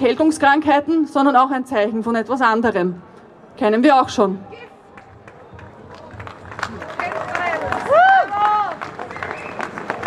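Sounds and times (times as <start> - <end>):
scattered clapping: 4.9 - 10.0
loud high shout: 7.3 - 8.8.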